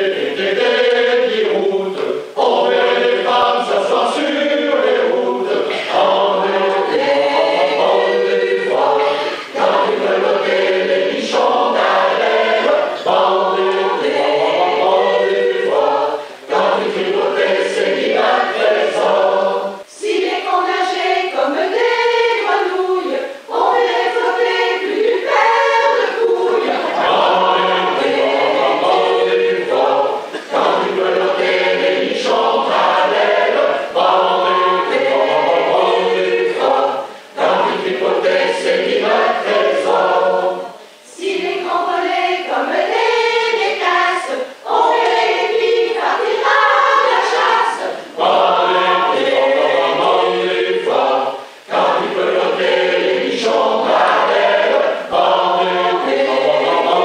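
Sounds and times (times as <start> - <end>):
mixed choir singing: 0.0 - 57.0.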